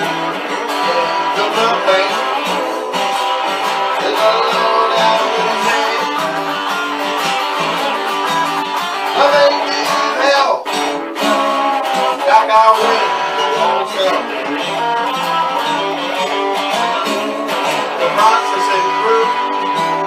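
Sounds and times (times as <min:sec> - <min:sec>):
electric guitar playing blues: 0:00.0 - 0:20.0.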